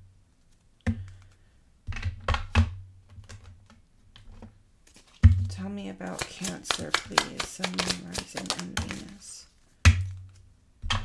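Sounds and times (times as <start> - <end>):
cards tapping on tabletop: 6.1 - 9.1.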